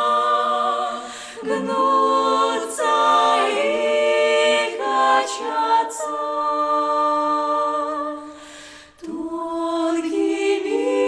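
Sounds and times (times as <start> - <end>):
women singing a cappella harmony: 0.0 - 11.0.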